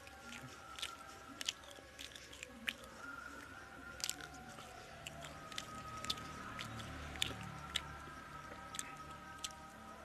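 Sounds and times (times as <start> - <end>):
wet mouth clicks: 0.0 - 9.6
close chewing: 0.0 - 10.0.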